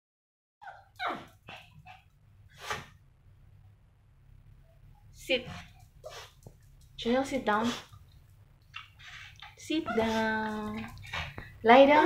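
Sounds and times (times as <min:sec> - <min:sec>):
small dog barking excitedly: 0:00.6 - 0:02.0.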